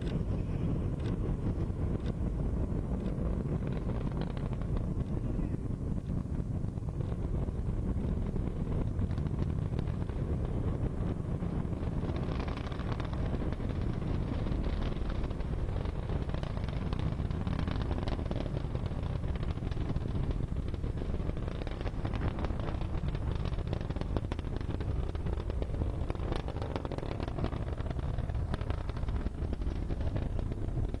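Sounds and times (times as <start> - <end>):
distant rocket engines rumbling: 0.0 - 31.0.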